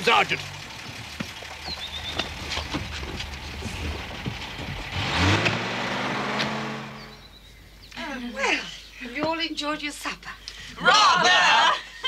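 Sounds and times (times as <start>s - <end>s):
vehicle engine humming and revving: 0.0s - 7.7s.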